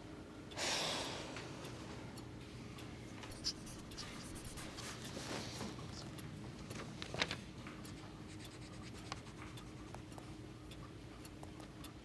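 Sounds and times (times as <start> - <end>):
low room hum: 0.0 - 12.0
pencil scratching on paper: 3.3 - 5.0, 8.0 - 10.0.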